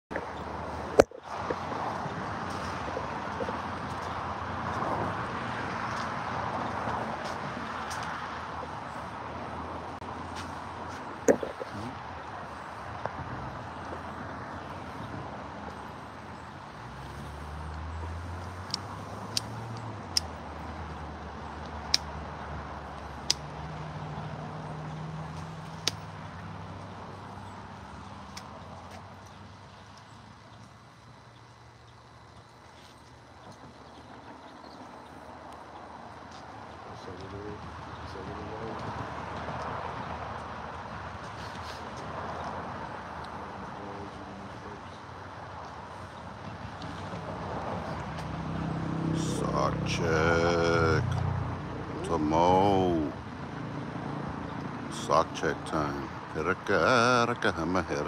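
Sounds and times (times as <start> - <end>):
low engine hum: 0.1 - 58.0
tyre and engine noise: 0.1 - 58.0.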